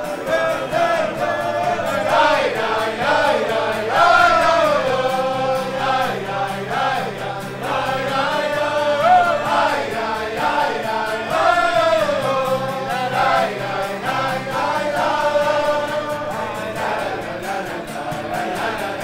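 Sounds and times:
men singing together: 0:00.0 - 0:19.0
strummed acoustic guitar: 0:00.0 - 0:19.0.

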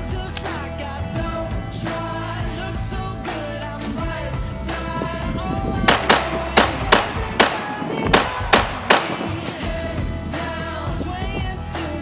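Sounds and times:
song with singing: 0:00.0 - 0:12.0
pistol shots: 0:05.9 - 0:09.6.

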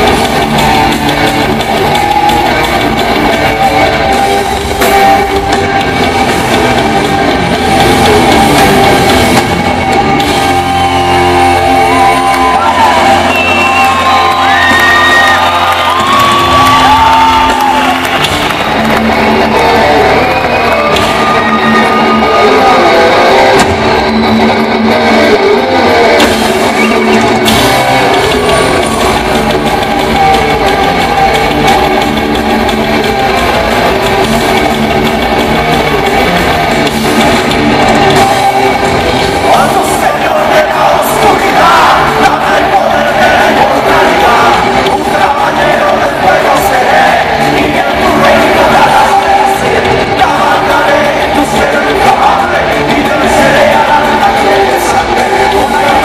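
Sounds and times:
heavy metal band playing live: 0:00.0 - 0:56.0.

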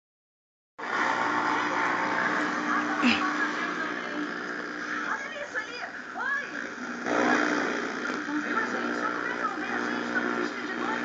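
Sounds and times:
steady background noise: 0:00.8 - 0:11.0.

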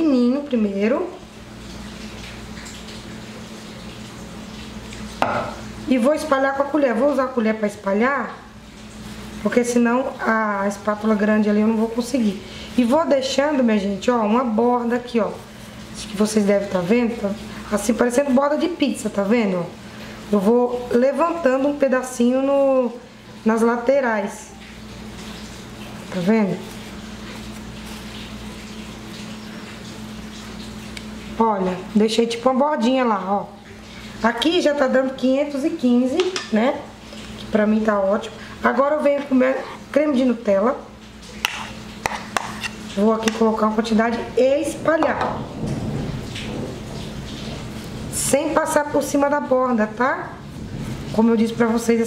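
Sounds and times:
spatula scraping filling: 0:41.3 - 0:45.3.

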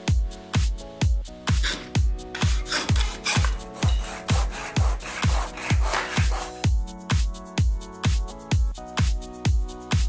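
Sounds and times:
electronic music with a beat: 0:00.0 - 0:10.0
hand saw cutting wood: 0:01.6 - 0:06.6
stick rubbed on sandpaper: 0:01.6 - 0:06.7.

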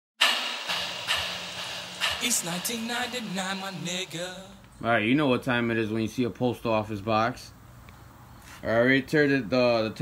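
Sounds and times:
loud burst of hiss: 0:00.2 - 0:04.6
sharp hits: 0:00.2 - 0:04.6
low steady hum: 0:00.6 - 0:05.6.

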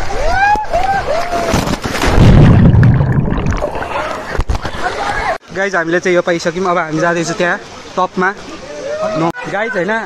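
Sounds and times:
deep water rush and splash: 0:01.0 - 0:05.5
water sloshing: 0:01.6 - 0:05.4.

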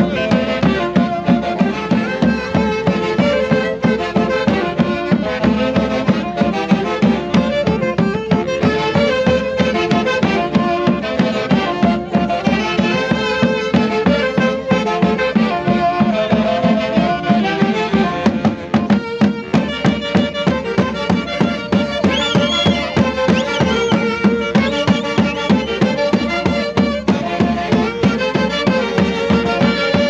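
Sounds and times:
saxophones playing melody: 0:00.0 - 0:30.0.

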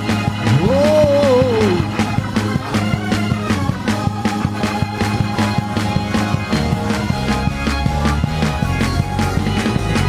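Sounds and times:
quick steady drum beat: 0:00.0 - 0:10.0
upbeat church music: 0:00.0 - 0:10.0
loud long wail: 0:00.4 - 0:02.0.

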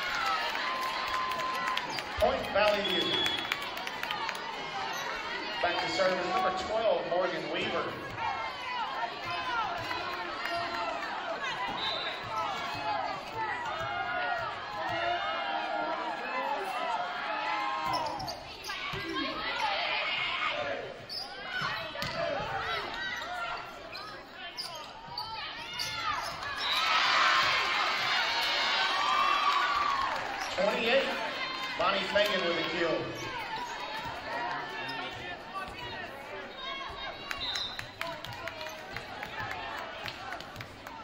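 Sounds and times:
crowd cheering: 0:00.0 - 0:21.0, 0:26.0 - 0:41.0
crowd and player voices: 0:00.0 - 0:41.0.

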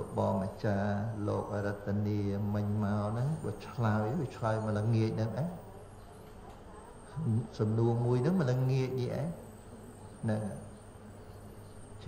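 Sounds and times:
man chanting: 0:00.0 - 0:05.6, 0:07.1 - 0:09.4.

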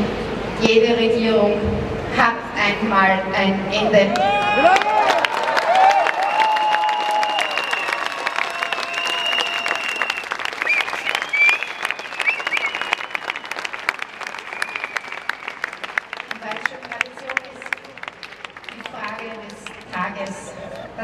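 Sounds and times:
crowd applauding: 0:04.1 - 0:21.0.

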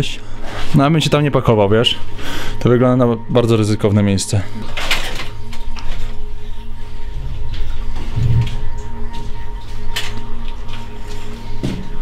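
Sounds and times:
ambient drone music: 0:00.0 - 0:12.0.

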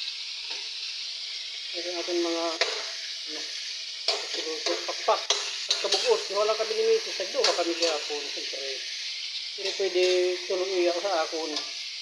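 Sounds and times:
food sizzling in a wok: 0:00.0 - 0:12.0
spatula stirring in wok: 0:02.5 - 0:08.5.

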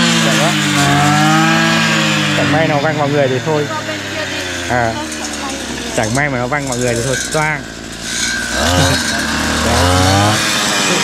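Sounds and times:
brush cutter engine cutting grass: 0:00.0 - 0:11.0.

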